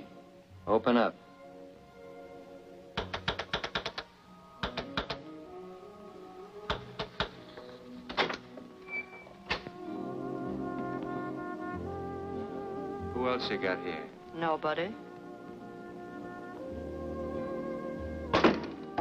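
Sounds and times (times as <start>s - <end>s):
orchestral music with brass tones: 0.0s - 3.2s, 3.9s - 19.0s
sharp clicks and knocks: 3.0s - 5.2s.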